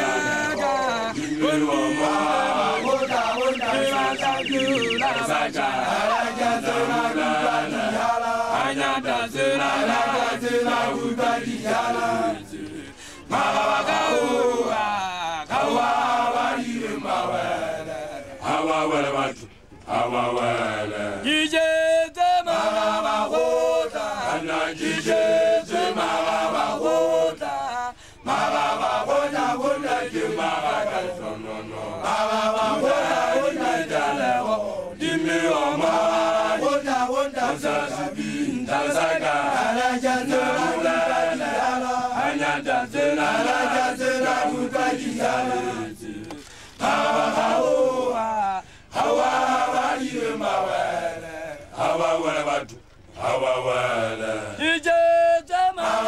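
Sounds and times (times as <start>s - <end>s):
group chanting in unison: 0.0s - 54.9s, 55.7s - 56.0s.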